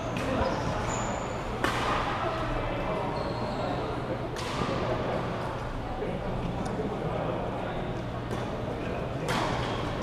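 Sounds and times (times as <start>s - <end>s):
chatter of many voices echoing: 0.0s - 10.0s
faint high squeak: 0.3s - 1.4s, 3.1s - 3.8s.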